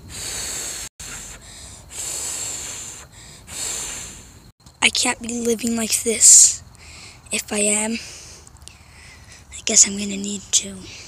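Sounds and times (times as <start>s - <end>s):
breath-like hissing: 0.0s - 4.5s, 6.8s - 7.3s.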